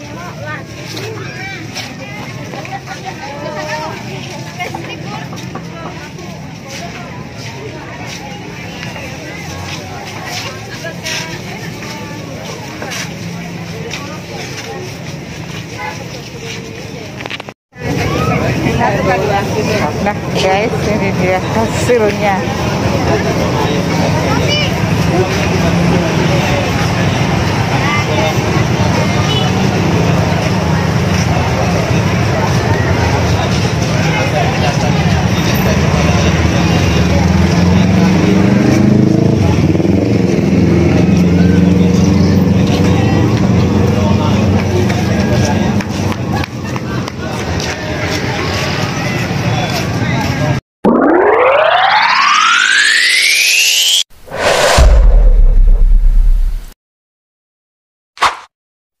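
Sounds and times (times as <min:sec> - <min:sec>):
people talking: 0:00.0 - 0:39.7, 0:41.0 - 0:52.6
motorbike traffic: 0:00.0 - 0:50.6
rising pitch tone: 0:50.8 - 0:56.8.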